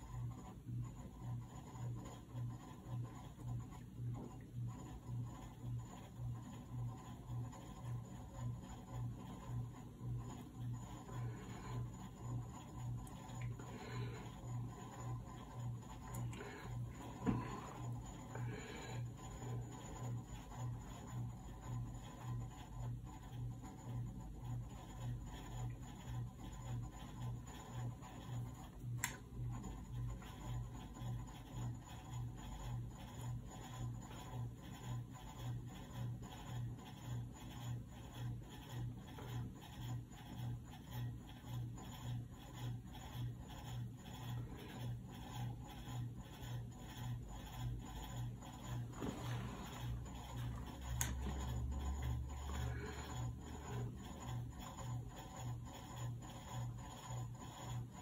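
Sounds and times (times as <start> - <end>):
pulsing low hum: 0.0 - 58.0
brush strokes on paper: 44.3 - 55.3.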